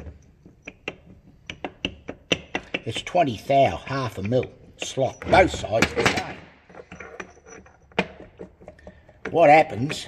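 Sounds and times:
light metallic clicks and knocks: 0.0 - 3.5, 5.7 - 10.0.

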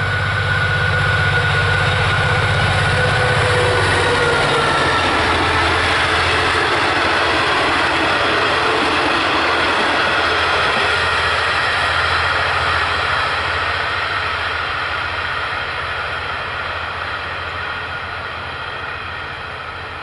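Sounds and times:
diesel locomotive passing: 0.0 - 20.0.

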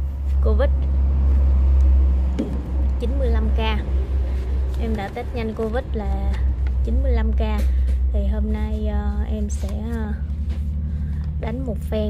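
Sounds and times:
loud low rumble: 0.0 - 12.0.

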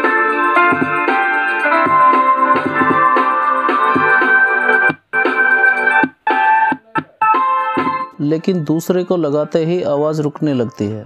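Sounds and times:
music through small speaker: 0.0 - 11.0.

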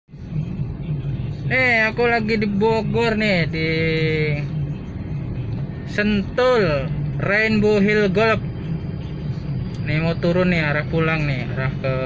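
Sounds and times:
car engine and road hum: 0.1 - 12.0
man talking: 9.8 - 12.0.

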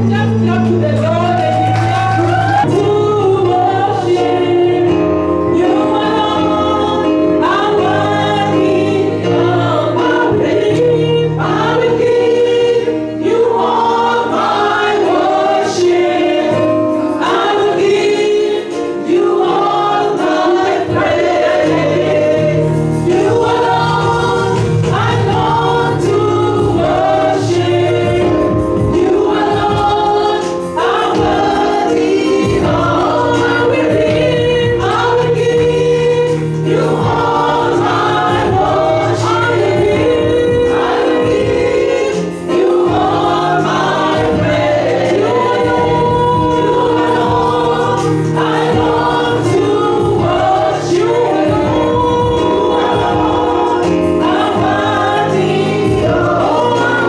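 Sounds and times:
electronic keyboard chords and bass: 0.0 - 57.0
voices singing through microphones: 0.0 - 57.0.

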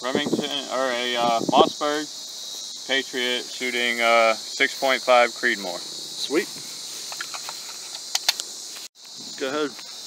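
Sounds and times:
insects chirring: 0.0 - 10.0
rifle metallic clicks: 7.2 - 8.5.

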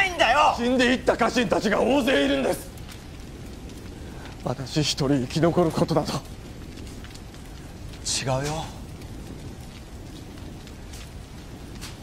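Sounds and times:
faint fire pops: 0.0 - 12.0
fire crackling: 0.0 - 12.0.

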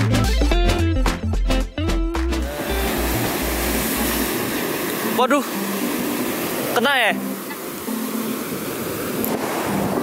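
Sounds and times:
music with guitar and bass: 0.0 - 10.0
ocean surf breaking on beach: 2.4 - 10.0.

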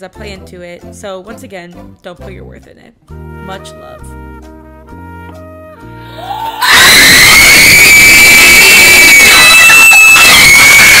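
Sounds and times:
girls screaming: 6.2 - 11.0.

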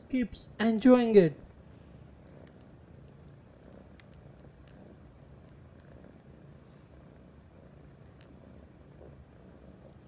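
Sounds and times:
cat purring faintly: 1.3 - 10.0
small sharp ticks and clicks: 2.4 - 6.3, 7.0 - 9.1, 9.8 - 10.0.

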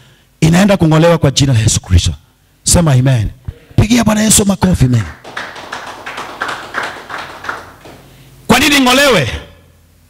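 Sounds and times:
congregation clapping: 4.9 - 8.2.

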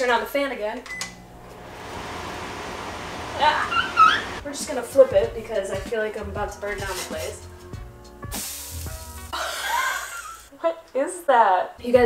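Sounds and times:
background music: 4.4 - 12.0
pancake batter sizzling on griddle: 8.3 - 10.5.

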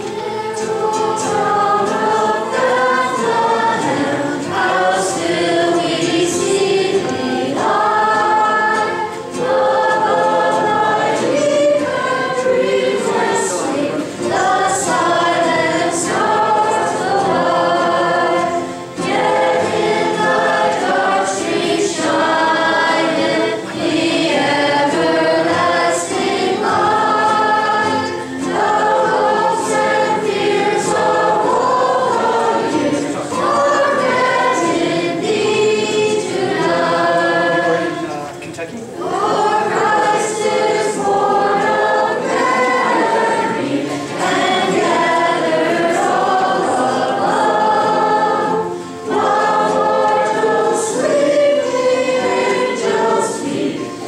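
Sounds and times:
girls singing a carol: 0.0 - 38.2, 38.9 - 54.0
acoustic guitars: 0.0 - 54.0.

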